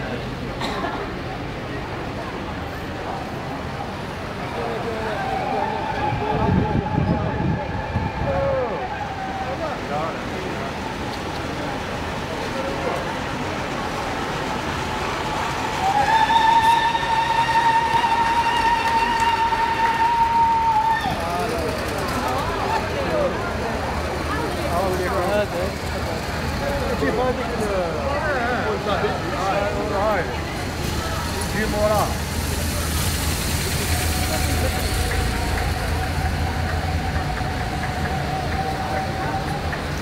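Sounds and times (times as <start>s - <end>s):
crowd voices: 0.0s - 40.0s
vehicle engines passing: 0.0s - 40.0s
police siren: 34.0s - 40.0s.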